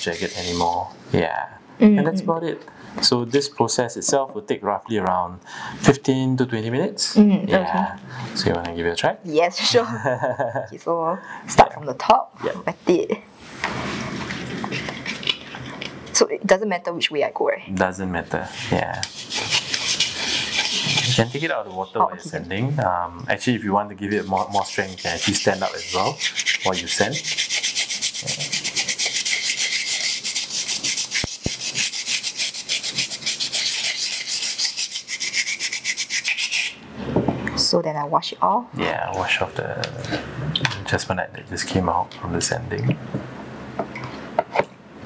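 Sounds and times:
scrubbing rub of sanding: 0.0s - 0.8s, 18.4s - 22.0s, 24.1s - 36.8s.

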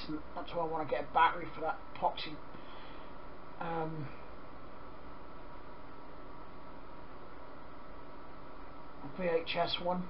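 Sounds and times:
steady room tone hiss: 0.0s - 10.0s.

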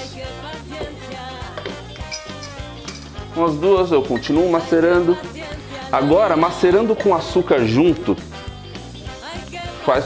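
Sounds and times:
music with bass and beat: 0.0s - 10.0s.

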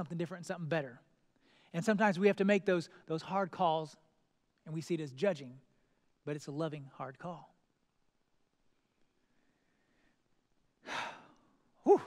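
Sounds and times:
man exhaling breathily: 10.8s - 12.0s.

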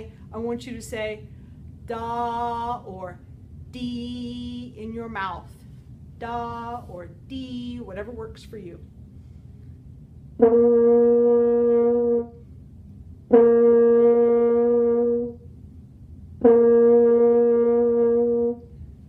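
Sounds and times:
french horn held notes: 10.4s - 12.4s, 13.2s - 15.5s, 16.4s - 18.8s.

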